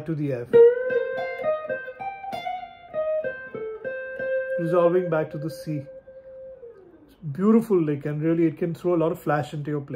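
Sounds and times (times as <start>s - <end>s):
clean electric guitar blues lick: 0.4s - 7.2s.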